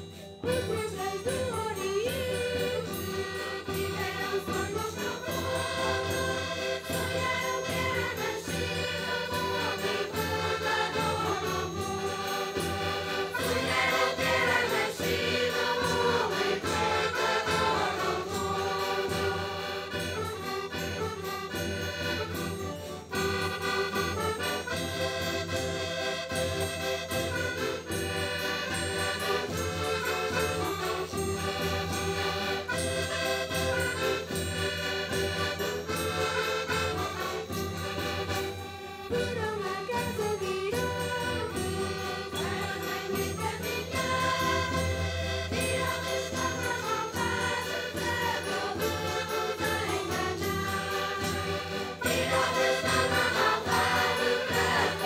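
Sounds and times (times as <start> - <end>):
button accordions: 0.0 - 55.0
choir singing folk song: 0.0 - 55.0.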